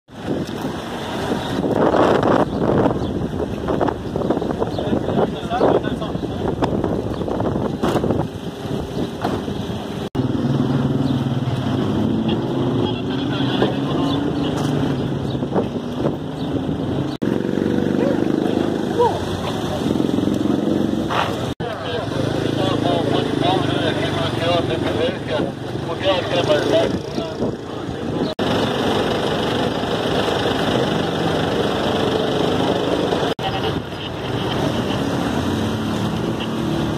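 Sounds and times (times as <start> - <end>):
voices: 3.6 - 7.1, 11.0 - 16.5, 17.7 - 36.9.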